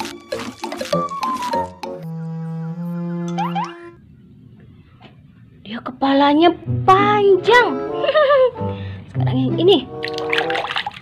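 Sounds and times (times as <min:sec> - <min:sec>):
faint low noise: 0:01.8 - 0:10.0.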